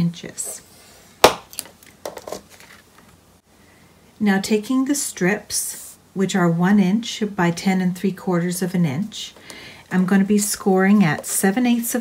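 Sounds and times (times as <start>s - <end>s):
paper rustling: 2.1s - 3.2s.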